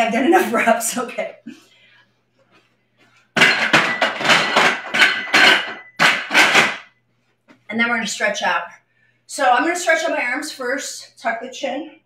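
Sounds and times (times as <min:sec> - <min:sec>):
dumbbells clattering: 0:03.4 - 0:07.0.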